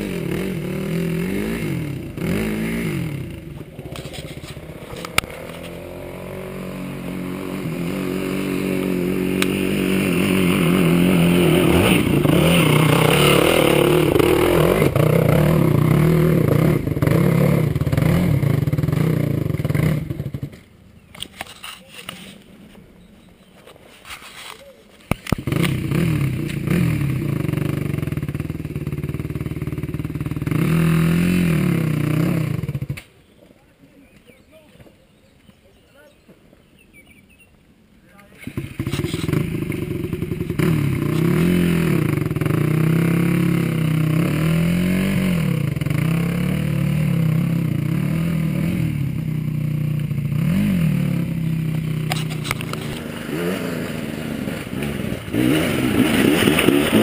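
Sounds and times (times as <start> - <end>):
dirt bike engine revving: 0.0 - 20.6, 25.2 - 33.0, 38.4 - 57.0.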